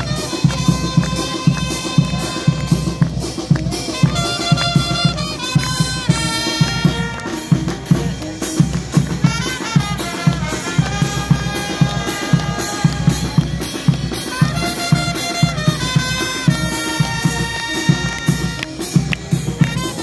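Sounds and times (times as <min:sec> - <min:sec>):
bass drum and snare beat: 0:00.0 - 0:20.0
brass band melody: 0:00.0 - 0:20.0.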